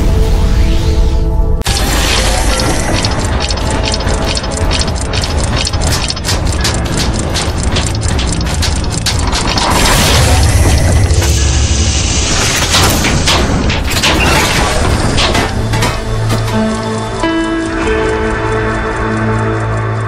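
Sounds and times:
deep rumbling music bed: 0:00.0 - 0:20.0
clockwork gears ratcheting and clicking: 0:01.6 - 0:20.0.

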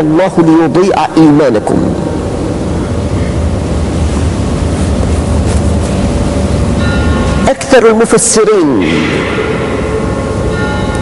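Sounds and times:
faint hum tones: 0:00.0 - 0:11.0
low rumble with hiss: 0:00.0 - 0:11.0.

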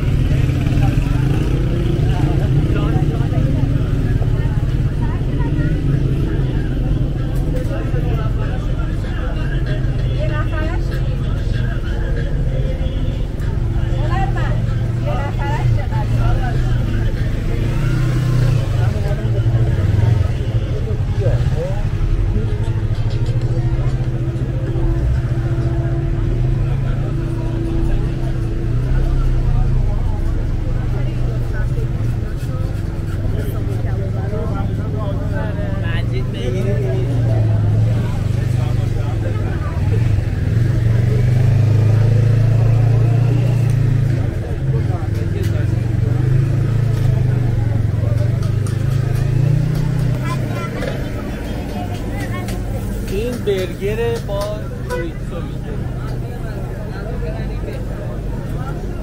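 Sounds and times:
car and motorcycle engines humming: 0:00.0 - 0:59.0
crowd chatter: 0:00.0 - 0:59.0.

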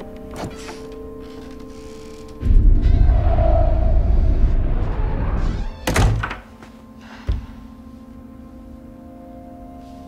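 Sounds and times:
low rumbling score: 0:02.4 - 0:05.8
heavy door slamming: 0:05.4 - 0:06.4.

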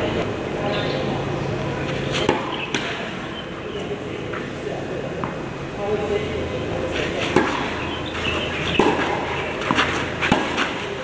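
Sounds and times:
tennis ball pocks: 0:02.1 - 0:03.0, 0:07.0 - 0:11.0.

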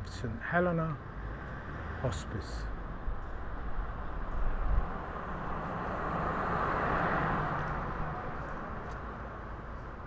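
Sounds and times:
road vehicle passing by: 0:01.1 - 0:02.2, 0:03.6 - 0:10.0.

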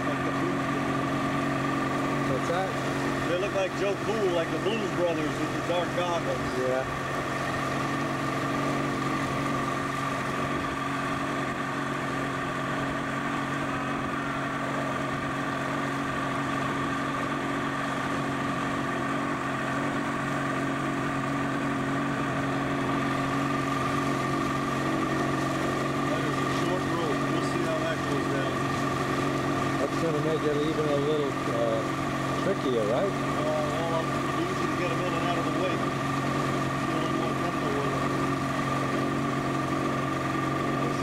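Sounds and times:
boat wake rushing: 0:00.0 - 0:41.0
motorboat engine running: 0:00.0 - 0:41.0.

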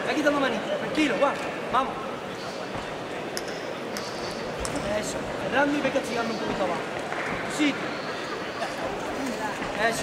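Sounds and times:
crowd and hall noise: 0:00.0 - 0:10.0.

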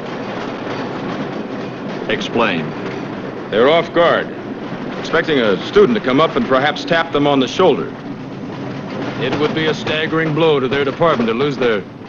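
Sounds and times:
cable car running: 0:00.0 - 0:12.0.

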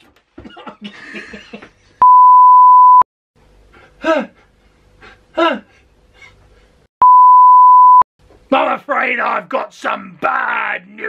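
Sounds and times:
steady test tone beep: 0:02.0 - 0:03.0, 0:07.0 - 0:08.0.

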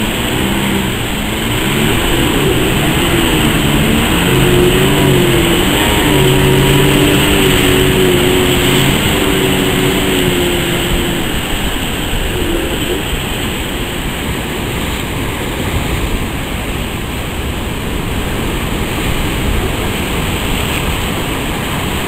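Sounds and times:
motor hum: 0:00.0 - 0:16.3
surf breaking: 0:00.0 - 0:22.0
wind buffeting microphone: 0:00.0 - 0:22.0.

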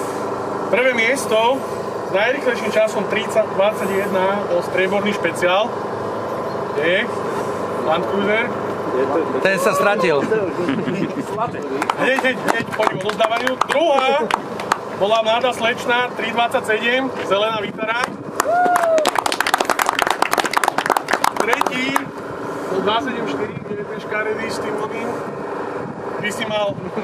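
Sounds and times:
engine humming: 0:00.0 - 0:27.0
crowd voices: 0:07.8 - 0:15.0
crowd clapping: 0:11.5 - 0:15.0, 0:18.0 - 0:22.1
long whoop: 0:18.4 - 0:19.3.

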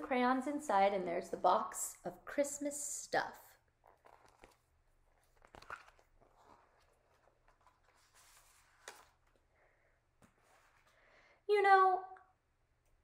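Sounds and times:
picture book rustling and tapping: 0:03.8 - 0:09.4.

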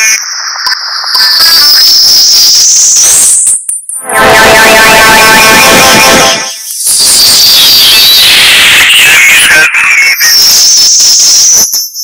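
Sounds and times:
faint melody: 0:04.0 - 0:06.6
shrill distorted whistling tone: 0:04.0 - 0:09.7.

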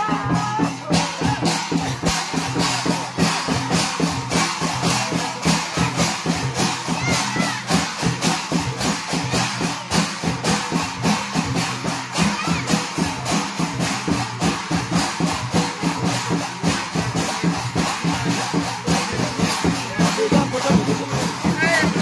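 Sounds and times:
hand drum beat: 0:00.0 - 0:22.0
small hand cymbals: 0:00.0 - 0:22.0.

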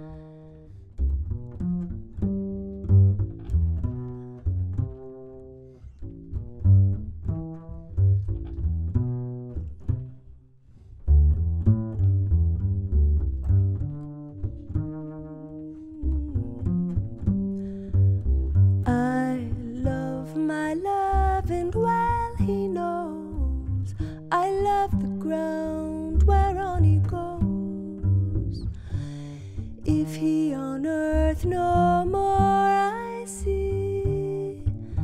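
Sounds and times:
double bass plucked: 0:00.0 - 0:35.0
woman singing: 0:15.8 - 0:16.6, 0:18.8 - 0:28.7, 0:29.9 - 0:34.8.

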